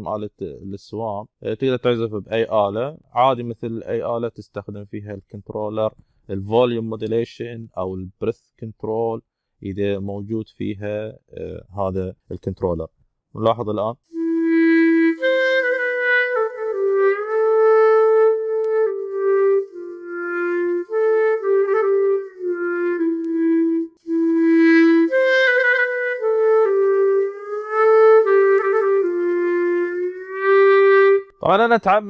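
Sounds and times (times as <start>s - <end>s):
clarinet legato melody: 14.1s - 31.4s.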